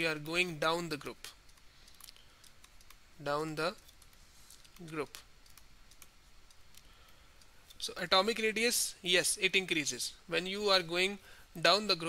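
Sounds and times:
man talking: 0:00.0 - 0:01.4, 0:03.2 - 0:03.8, 0:04.8 - 0:05.3, 0:07.8 - 0:12.0.

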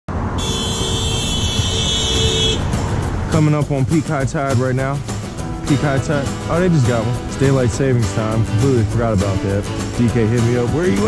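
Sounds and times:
road traffic rumble: 0:00.1 - 0:11.0
vehicle horn held steady: 0:00.4 - 0:02.7.

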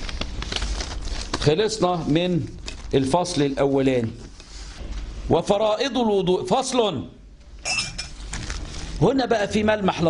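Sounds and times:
low steady hum: 0:00.0 - 0:10.0
glassware clinking: 0:07.6 - 0:08.2.

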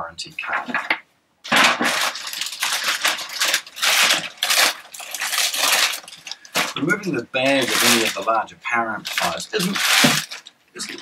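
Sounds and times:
plastic bag crinkling: 0:00.7 - 0:11.0.

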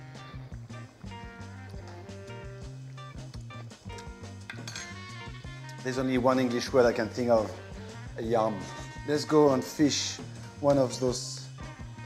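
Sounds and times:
soft background music: 0:00.0 - 0:12.0
metal utensil clinking on pot: 0:03.9 - 0:05.0.

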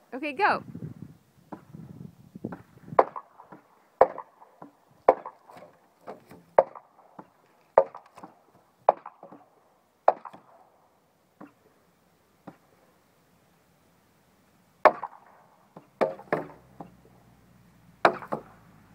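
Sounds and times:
wooden knocks on fence boards: 0:02.5 - 0:09.5, 0:10.1 - 0:10.5, 0:14.8 - 0:17.0, 0:18.0 - 0:18.5.

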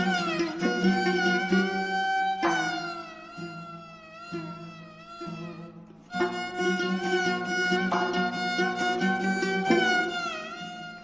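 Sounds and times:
bowed fiddle: 0:00.0 - 0:11.0
low plucked string notes: 0:00.0 - 0:11.0.

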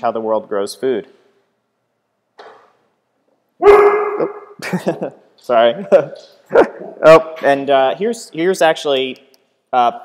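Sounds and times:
dog barking: 0:03.6 - 0:04.5.

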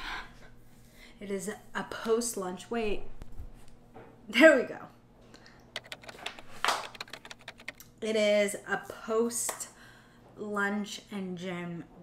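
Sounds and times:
computer keyboard typing: 0:05.8 - 0:07.8.

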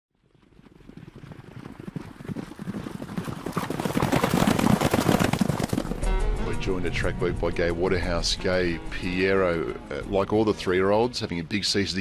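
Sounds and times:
galloping horse hoofbeats: 0:00.2 - 0:06.2.

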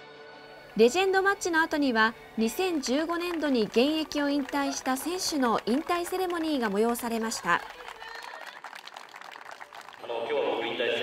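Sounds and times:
faint clapping: 0:02.5 - 0:10.1.

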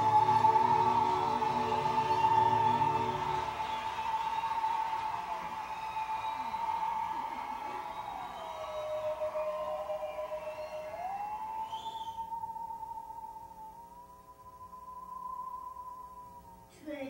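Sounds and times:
bowed musical saw: 0:00.0 - 0:16.8.

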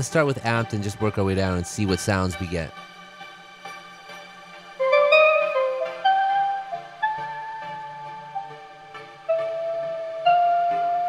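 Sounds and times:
slow keyboard melody: 0:00.0 - 0:11.0
low steady tone: 0:04.8 - 0:11.0.

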